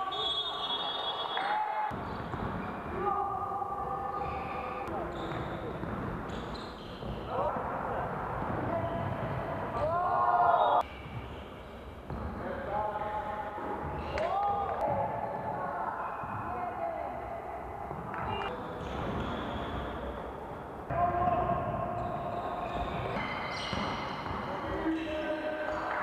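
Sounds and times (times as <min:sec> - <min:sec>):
basketball bouncing on court: 0:01.9 - 0:03.0, 0:04.2 - 0:07.4, 0:12.1 - 0:12.4, 0:21.2 - 0:24.9.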